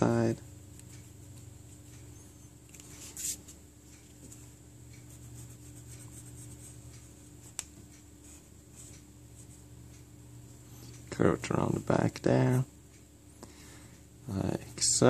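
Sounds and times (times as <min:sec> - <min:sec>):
steady low hum: 0:00.0 - 0:15.0
pencil scratching on paper: 0:05.1 - 0:06.8.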